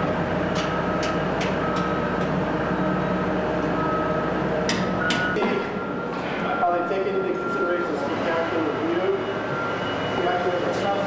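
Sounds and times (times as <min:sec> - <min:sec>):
mechanical hum: 0:00.0 - 0:11.0
people talking: 0:05.4 - 0:05.8, 0:06.4 - 0:09.3, 0:10.1 - 0:11.0.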